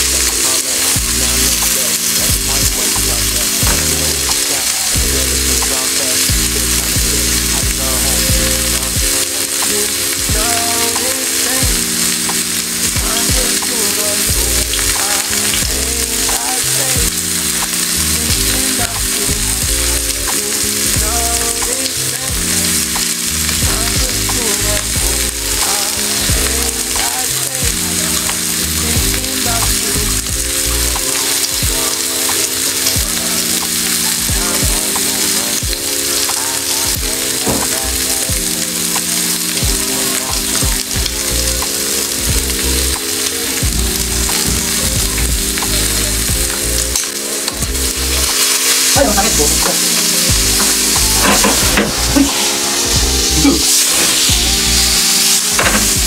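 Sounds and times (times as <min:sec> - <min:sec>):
background music with bassline: 0:00.0 - 0:56.0
chicken sizzling in oil: 0:00.0 - 0:56.0.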